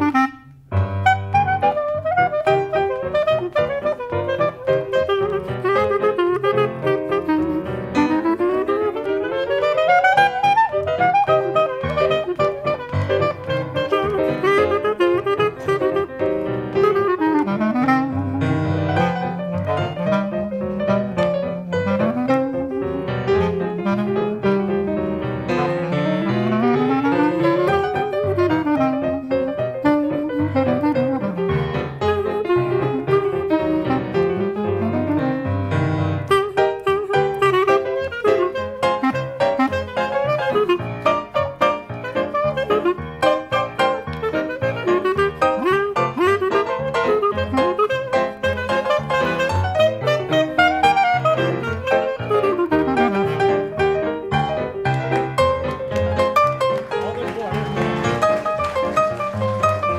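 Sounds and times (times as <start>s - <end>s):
clarinet melody: 0.0s - 59.9s
piano chords: 0.0s - 59.9s.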